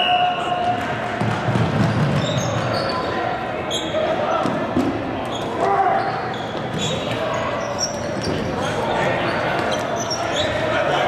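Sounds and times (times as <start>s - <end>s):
balls bouncing on wooden floor: 0.6s - 2.9s
sneaker squeaks: 1.8s - 10.9s.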